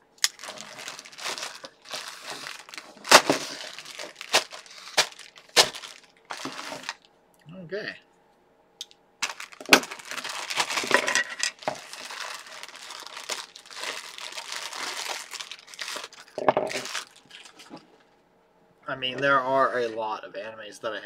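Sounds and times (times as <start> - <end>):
plastic bag crinkling: 0.2 - 7.1, 9.2 - 18.1.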